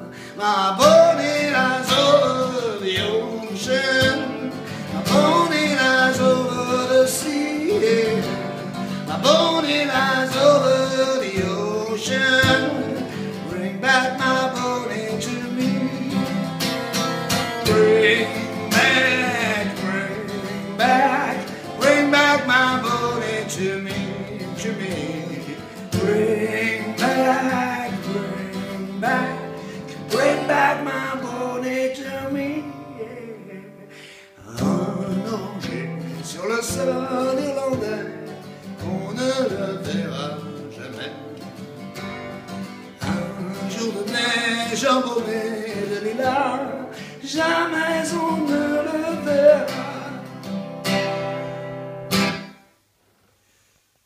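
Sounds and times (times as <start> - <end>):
man singing: 0.0 - 41.8, 43.0 - 50.6
acoustic guitar strumming: 0.0 - 52.8.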